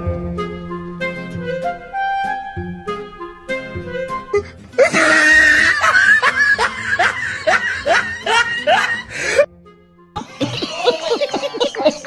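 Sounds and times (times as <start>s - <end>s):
laughter: 4.8s - 9.1s, 10.2s - 12.0s.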